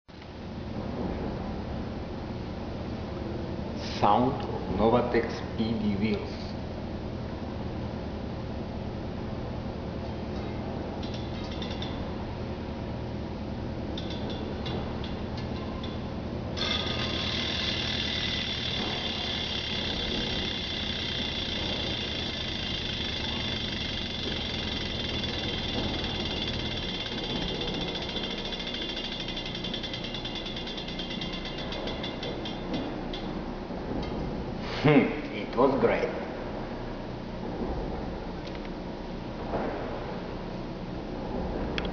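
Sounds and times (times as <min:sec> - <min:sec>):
bicycle hub ratcheting clicks: 0:11.0 - 0:12.0, 0:14.0 - 0:16.0, 0:16.6 - 0:33.4.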